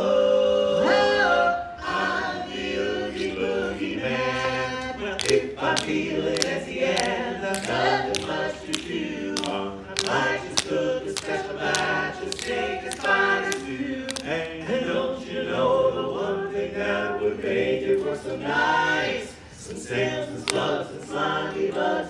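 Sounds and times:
men singing a cappella harmony: 0.0 - 22.0
sharp beat clicks: 5.2 - 14.4.

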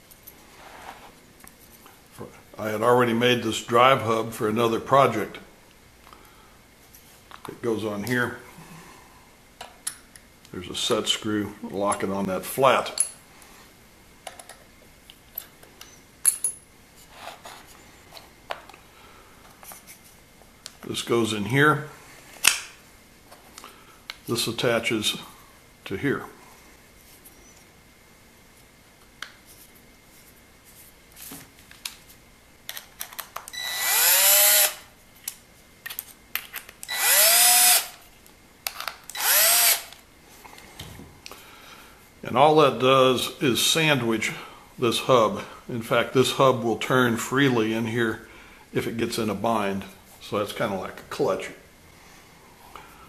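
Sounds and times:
clicks and taps of parts handled: 14.2 - 16.6
cordless drill driving screws: 33.5 - 34.8, 36.9 - 38.0, 39.1 - 39.9.

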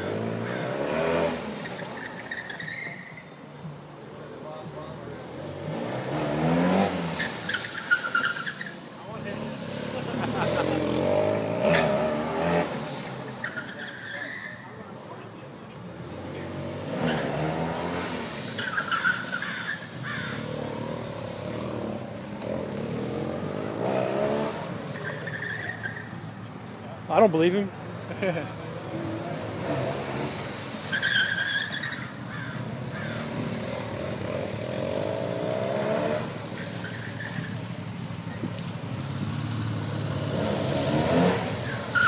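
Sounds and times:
tire squeals: 0.0 - 3.5, 6.4 - 14.8, 16.9 - 21.8, 22.4 - 26.4, 30.7 - 42.0
motorcycle engine revving: 9.0 - 12.9, 20.1 - 24.8, 32.8 - 36.4.

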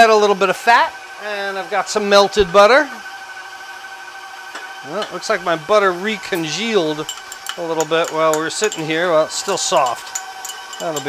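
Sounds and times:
stand mixer motor humming: 0.7 - 11.0.

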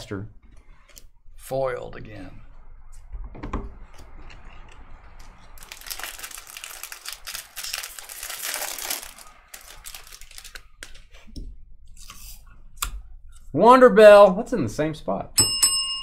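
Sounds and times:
foil wrapper tearing and crinkling: 5.6 - 11.0.

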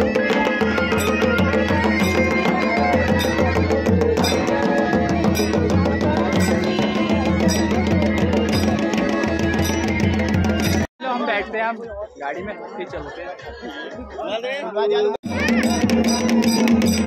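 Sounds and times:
traditional drums beating: 0.0 - 14.1, 15.2 - 17.0.

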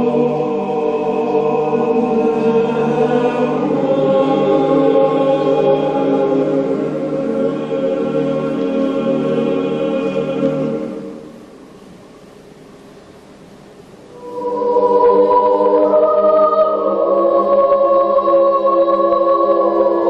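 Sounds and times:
boys' choir singing: 0.0 - 11.4, 14.1 - 20.0.

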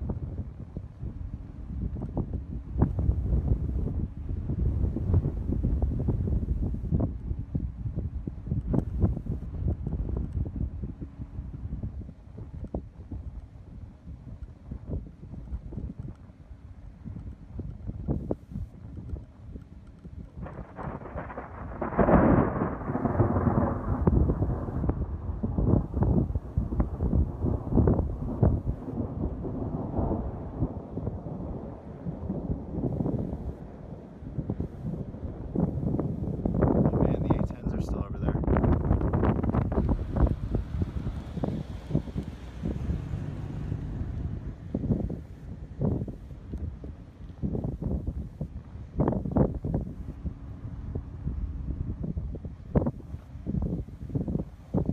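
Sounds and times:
thunder rumble: 0.0 - 54.9
wind buffeting microphone: 0.0 - 54.9.

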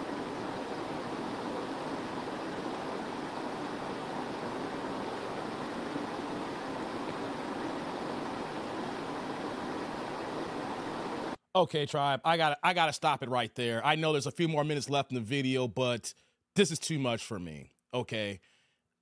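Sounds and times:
room noise hiss: 0.0 - 11.4.

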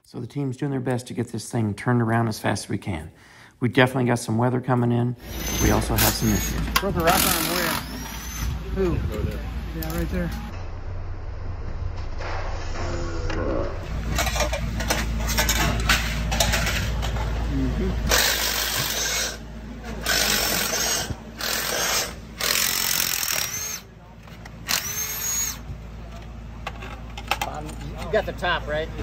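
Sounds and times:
power tools running in bursts: 5.2 - 8.6, 18.1 - 19.4, 20.0 - 23.8, 24.7 - 25.6
metal parts handled: 14.1 - 17.4.

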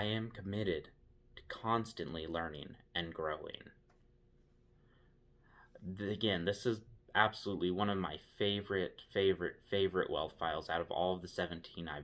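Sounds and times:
man speaking: 0.0 - 3.8, 5.7 - 12.0
low steady hum: 0.0 - 12.0.

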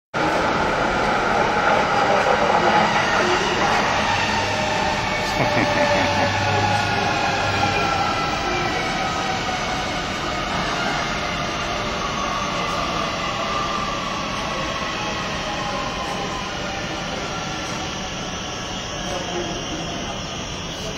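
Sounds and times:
train wheels rumbling on track: 0.2 - 20.9.

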